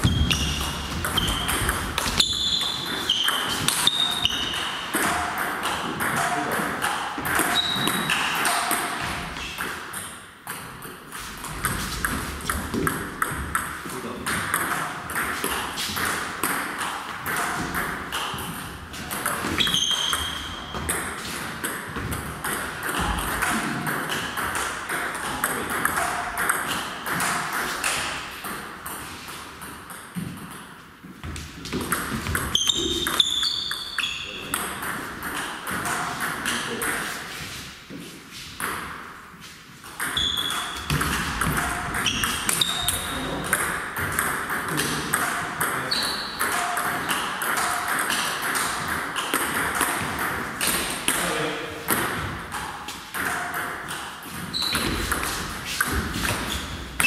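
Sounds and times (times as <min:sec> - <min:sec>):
table tennis balls clicking: 0:00.0 - 0:37.2, 0:39.8 - 0:51.2
short high squeaks: 0:02.2 - 0:04.7, 0:19.6 - 0:20.7, 0:40.1 - 0:40.8, 0:42.0 - 0:43.2, 0:45.9 - 0:46.4, 0:54.5 - 0:55.0.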